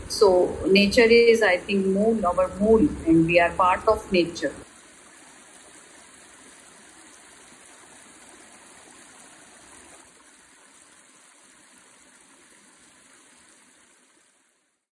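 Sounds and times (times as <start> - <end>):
water cascading over rock: 1.7 - 14.6.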